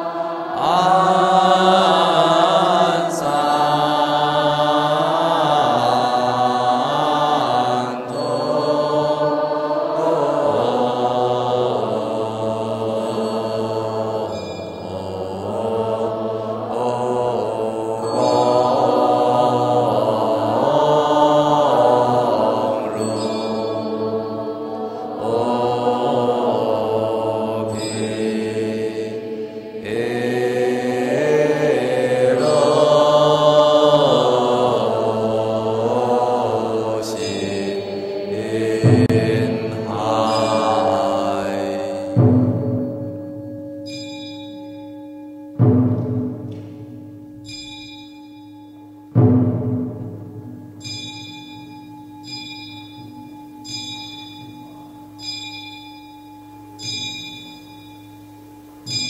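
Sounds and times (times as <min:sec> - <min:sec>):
monastics chanting in unison: 0:00.0 - 0:48.4.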